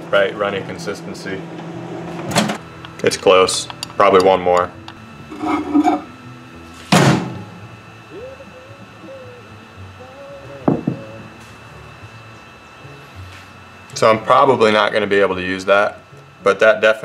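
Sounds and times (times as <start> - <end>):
faint wavering tone: 7.7 - 13.1
glass cup knocking on bench: 10.7 - 11.0.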